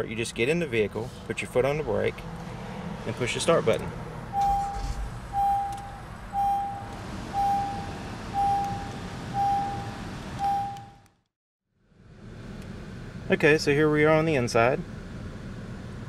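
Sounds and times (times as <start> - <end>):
car engine running: 0.9 - 11.0
car door warning chime beeping: 4.3 - 11.1.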